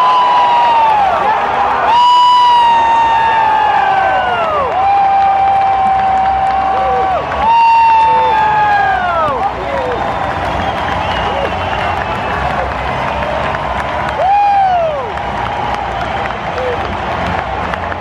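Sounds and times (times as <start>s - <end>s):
fans shouting: 0.0s - 18.0s
stadium crowd cheering: 0.0s - 18.0s.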